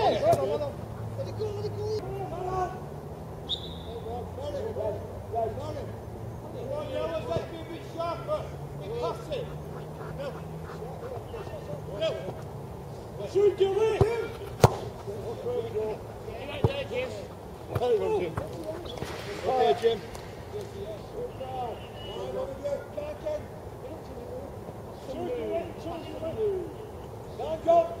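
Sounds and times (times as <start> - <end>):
distant players calling out: 0.0 - 28.0
football being kicked: 14.0 - 15.0.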